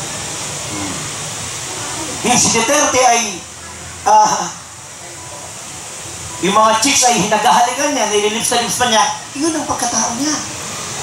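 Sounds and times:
steady hall hiss: 0:00.0 - 0:11.0.

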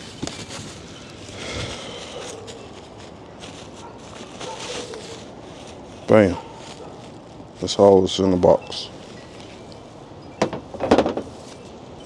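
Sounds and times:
packing material rustling: 0:00.0 - 0:07.8.

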